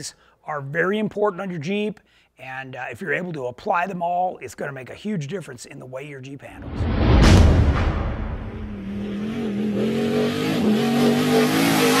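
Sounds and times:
engine revving: 0:08.2 - 0:12.0.

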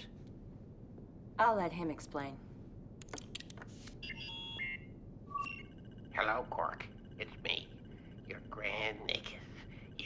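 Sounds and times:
overlapping electronic beeping tones: 0:04.0 - 0:10.0.

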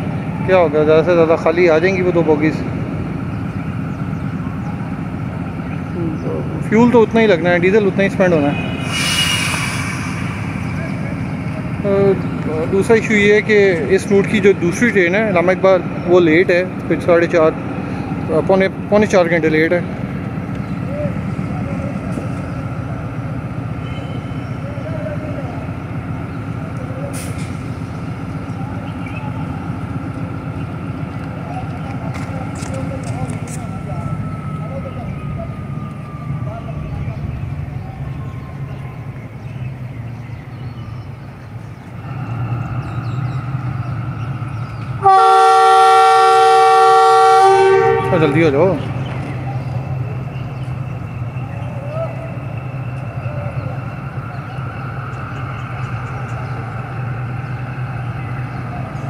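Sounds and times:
diesel locomotive idling: 0:00.0 - 0:59.0
train horn chord: 0:45.0 - 0:48.5.

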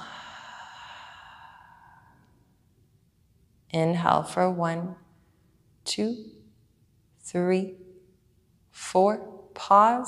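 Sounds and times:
woman exhaling: 0:00.0 - 0:02.3.

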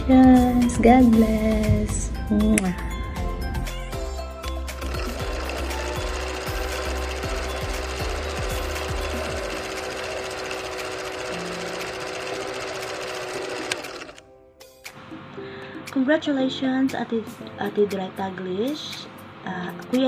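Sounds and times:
film projector clatter: 0:04.8 - 0:14.2.

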